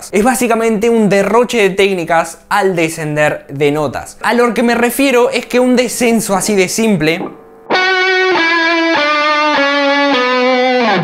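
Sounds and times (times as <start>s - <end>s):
electric guitar descending notes: 7.1s - 11.0s.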